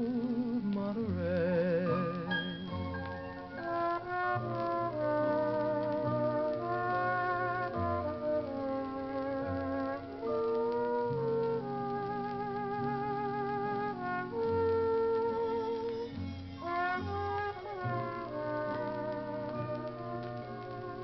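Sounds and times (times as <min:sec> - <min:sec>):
big band orchestra playing ballad: 0:00.0 - 0:21.0.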